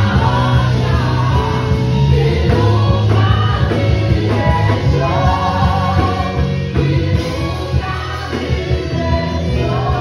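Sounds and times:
band with electric guitar: 0:00.0 - 0:10.0
group singing in harmony: 0:00.0 - 0:10.0.

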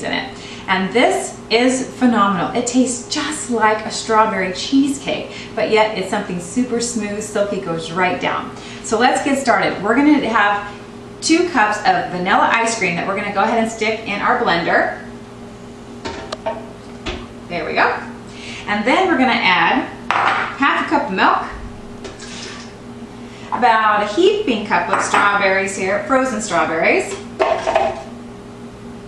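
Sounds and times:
low steady hum: 0:00.0 - 0:29.0.

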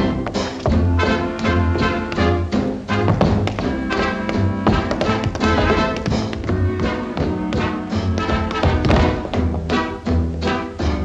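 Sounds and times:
dance orchestra with pulsing bass: 0:00.0 - 0:11.0
tap shoes clicking on hard floor: 0:00.2 - 0:02.4, 0:03.1 - 0:09.8.

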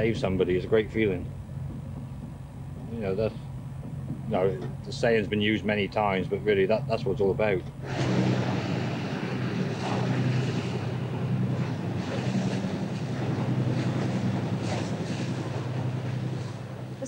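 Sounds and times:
boat diesel engines droning: 0:00.0 - 0:17.0
rushing water and spray: 0:07.8 - 0:17.0
wind buffeting microphone: 0:07.8 - 0:17.0.

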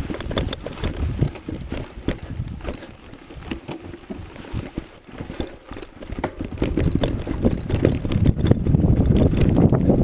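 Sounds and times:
ride jolting over bumpy track: 0:00.0 - 0:10.0.

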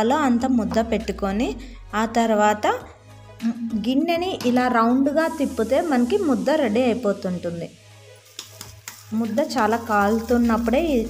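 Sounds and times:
woman talking: 0:00.0 - 0:07.8, 0:09.1 - 0:11.0.

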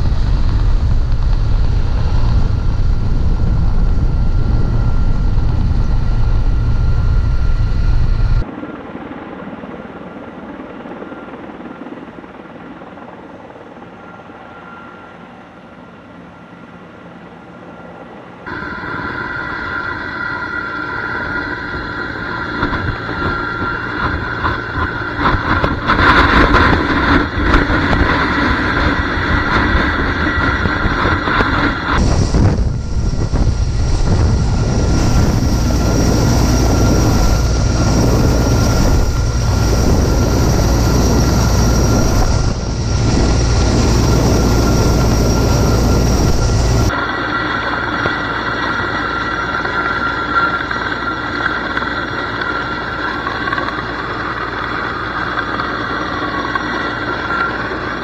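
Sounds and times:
wind rumble on microphone: 0:00.0 - 0:08.5, 0:21.2 - 0:49.0
helicopter rotor noise: 0:00.0 - 0:58.0
high turbine whine: 0:00.0 - 0:58.0.

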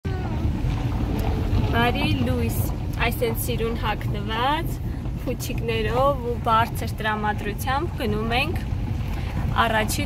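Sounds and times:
car interior rumble: 0:00.1 - 0:10.0
woman speaking: 0:01.6 - 0:08.7, 0:09.4 - 0:10.0.

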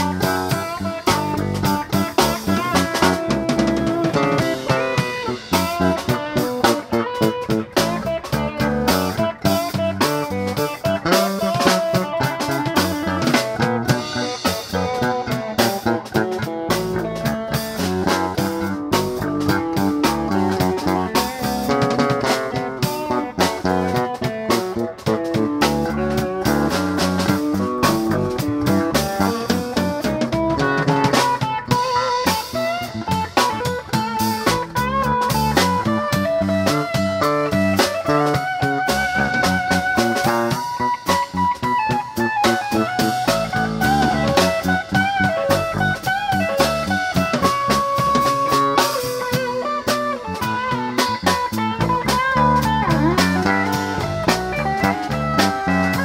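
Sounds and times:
drum kit groove: 0:00.0 - 0:56.0
electric bass: 0:00.0 - 0:56.0
electric guitar lead line: 0:00.0 - 0:56.0.

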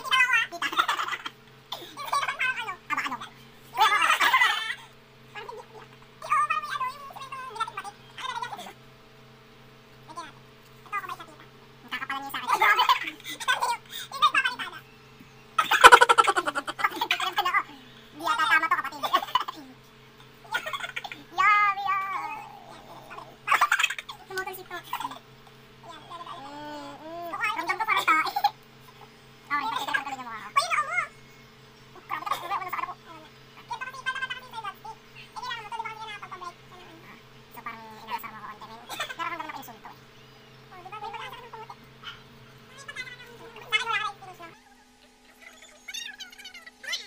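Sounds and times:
woman laughing: 0:03.8 - 0:04.9, 0:15.6 - 0:17.4, 0:44.5 - 0:45.9
person shrieking laugh: 0:15.6 - 0:16.9.

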